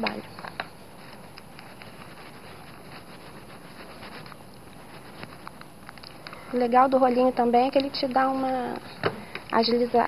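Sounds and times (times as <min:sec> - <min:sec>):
foam roller rustling over fabric: 0:00.0 - 0:05.6
steady low hiss: 0:00.0 - 0:10.0.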